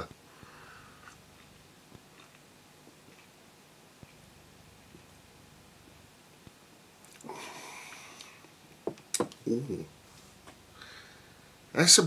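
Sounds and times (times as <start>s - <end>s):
sipping and swallowing: 7.0s - 7.3s.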